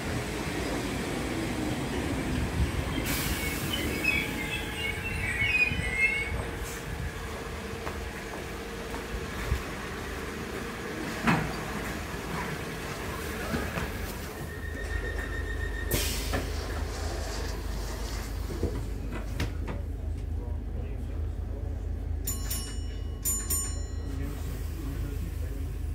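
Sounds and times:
train carriage low hum: 0.0s - 25.9s.

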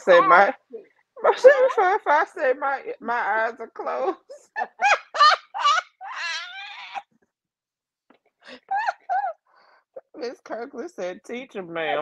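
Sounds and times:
woman laughing hard: 4.3s - 7.0s, 8.5s - 9.4s.

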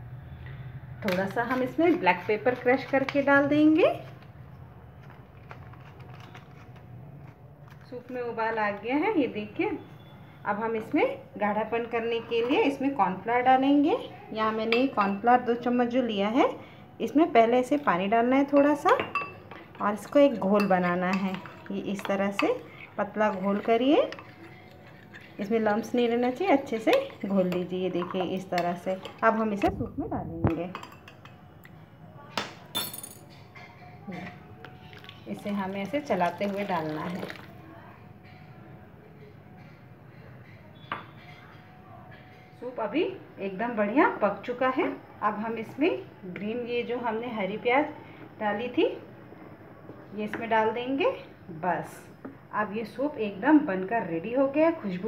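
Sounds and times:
kitchen utensils clinking: 17.7s - 29.8s, 32.7s - 37.5s.

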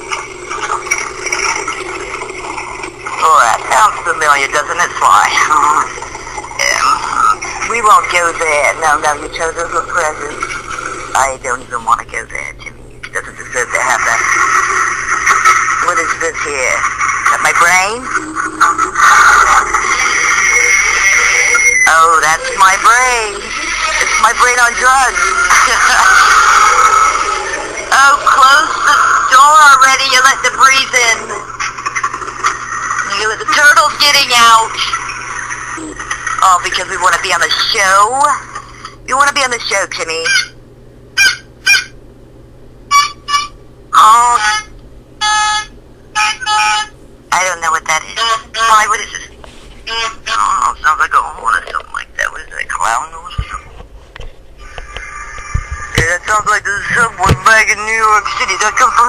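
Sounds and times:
wavering high-pitched drone: 17.2s - 29.4s
horn honks: 44.4s - 47.0s.

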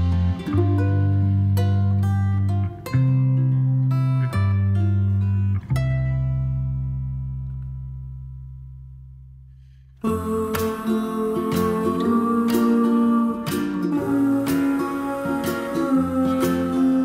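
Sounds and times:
acoustic guitar and bass chords: 0.0s - 17.0s.

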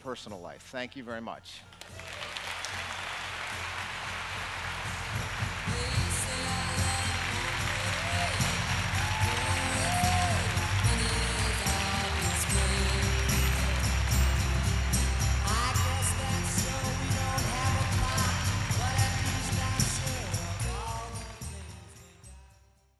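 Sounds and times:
audience applause: 1.8s - 21.7s
music with deep bass line: 4.8s - 22.4s.

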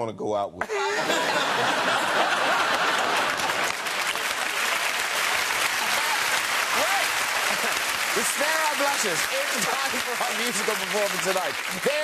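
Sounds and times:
audience applauding: 1.1s - 12.0s.

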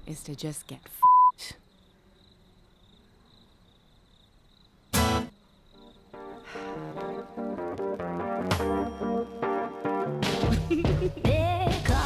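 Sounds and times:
censor bleep: 1.0s - 1.4s
acoustic guitar strum: 4.9s - 5.3s.

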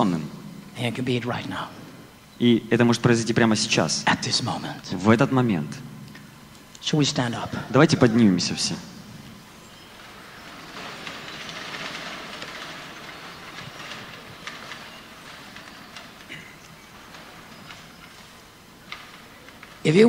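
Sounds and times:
audience shuffling and rustling: 0.0s - 5.3s, 6.1s - 20.0s
faint clicks: 9.2s - 19.9s.

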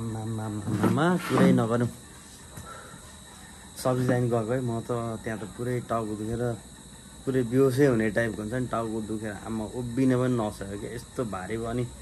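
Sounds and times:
man speaking: 0.0s - 2.0s, 3.8s - 6.6s, 7.2s - 12.0s
crickets chirring: 0.0s - 12.0s.

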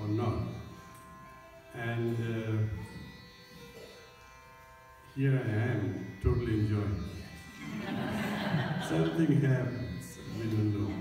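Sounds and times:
faint steady drone: 0.0s - 11.0s.

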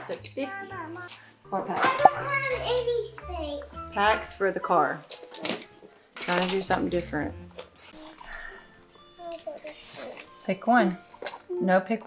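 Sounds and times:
soft background music: 0.0s - 12.0s.

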